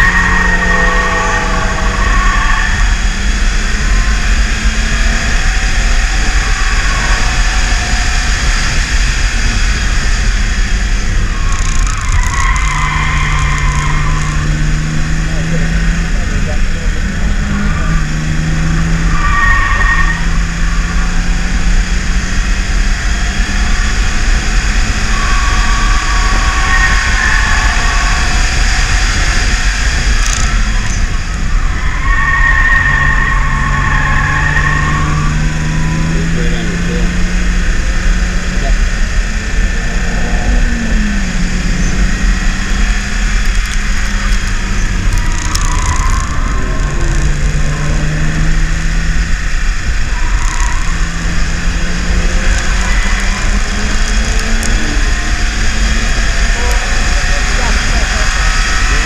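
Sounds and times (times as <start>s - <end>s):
car engine pulling hard: 0.0s - 59.0s
high-pitched squeals: 0.0s - 59.0s
road and wind noise: 0.0s - 59.0s.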